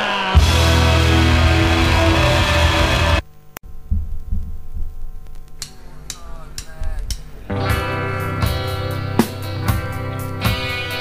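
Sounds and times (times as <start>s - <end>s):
rock band music: 0.0s - 3.2s, 7.2s - 11.0s
sliding guitar notes: 0.0s - 3.2s, 6.6s - 11.0s
low drum pulses: 0.4s - 10.6s
click: 5.2s - 7.2s
cymbal taps: 5.2s - 7.4s.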